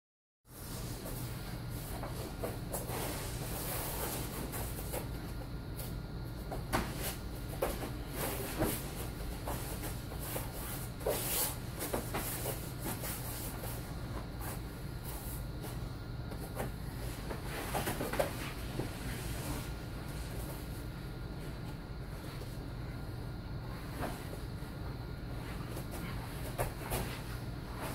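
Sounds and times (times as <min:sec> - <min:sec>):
steady low hum: 0:00.5 - 0:27.9.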